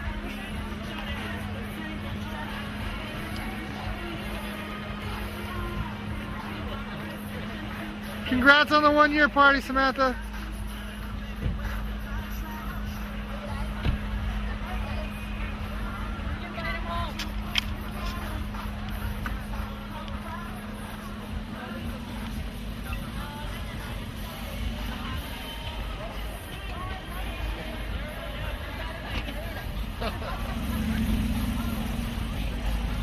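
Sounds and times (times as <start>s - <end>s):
car running nearby: 0.0s - 33.0s
indistinct voices: 0.0s - 33.0s
street noise: 0.0s - 33.0s.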